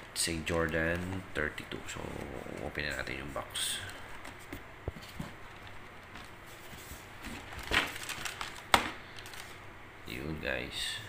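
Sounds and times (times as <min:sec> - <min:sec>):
cardboard box rustling: 0:04.1 - 0:09.5.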